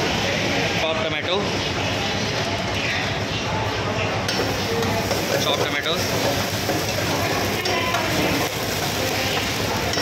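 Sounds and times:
metal spoon stirring: 4.3 - 10.0
tomatoes sizzling in hot oil: 4.3 - 10.0.

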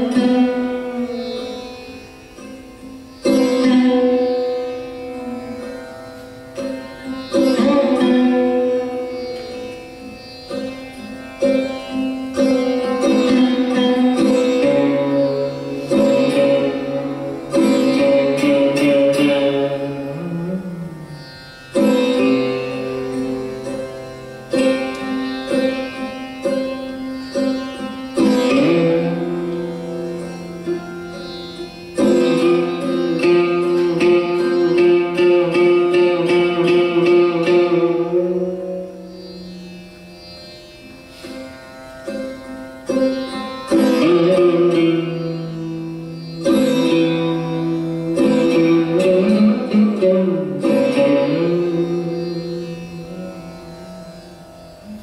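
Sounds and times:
drone strings humming: 0.0 - 55.0
sarod plucked strings: 0.0 - 55.0.

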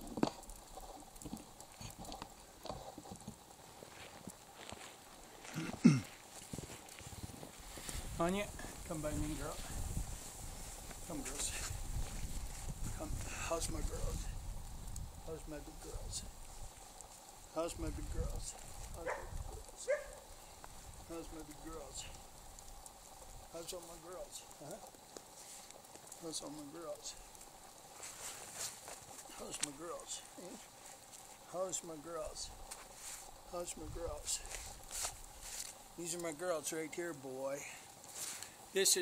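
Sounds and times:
footsteps crunching in snow: 2.7 - 14.4, 27.9 - 31.5, 32.7 - 33.4, 34.0 - 35.8, 38.0 - 38.6.

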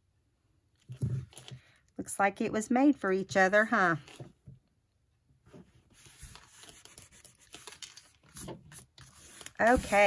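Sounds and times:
hands rubbing paper: 5.9 - 10.0.

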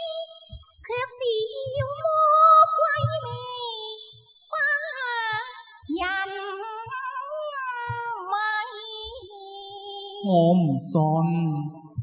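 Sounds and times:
opera singing with vibrato: 0.0 - 12.0.

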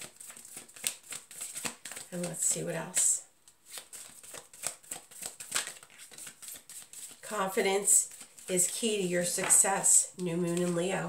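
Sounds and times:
cards shuffling: 0.0 - 11.0.

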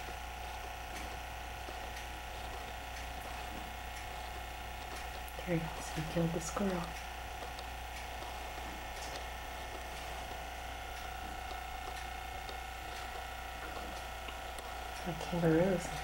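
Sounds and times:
steady hum and hiss: 0.0 - 16.0
faint ticks: 0.2 - 16.0.

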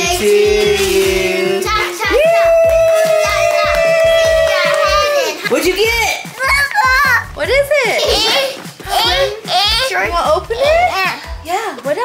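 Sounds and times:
background music with steady beat: 0.0 - 12.0
children talking and exclaiming: 1.2 - 12.0.

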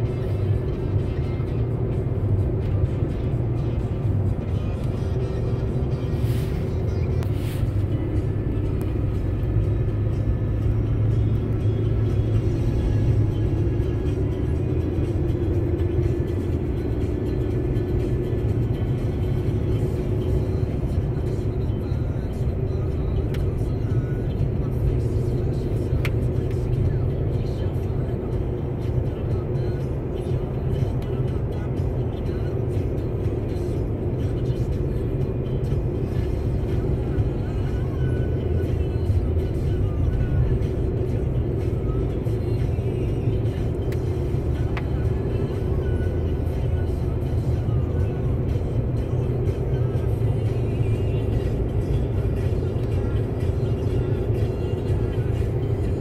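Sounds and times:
vehicle engine and tyres droning: 0.0 - 56.0.

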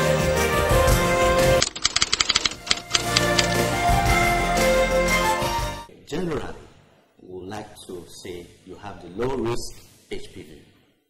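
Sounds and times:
background music: 0.0 - 5.9
typewriter key clicks: 1.6 - 3.7.

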